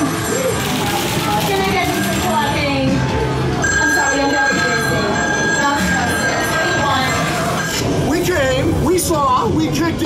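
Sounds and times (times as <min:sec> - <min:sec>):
noisy rumbling mix: 0:06.0 - 0:10.0.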